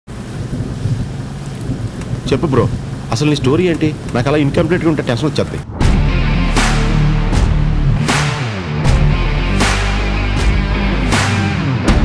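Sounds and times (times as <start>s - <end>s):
wind-like hiss: 0.1s - 5.6s
steady low rumble: 0.1s - 11.1s.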